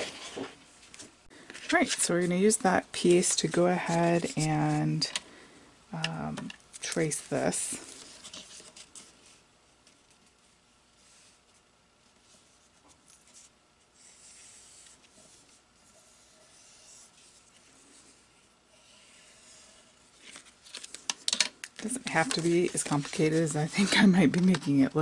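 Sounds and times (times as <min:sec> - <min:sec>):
pencil scratching on paper: 0:13.2 - 0:17.5, 0:18.7 - 0:19.9.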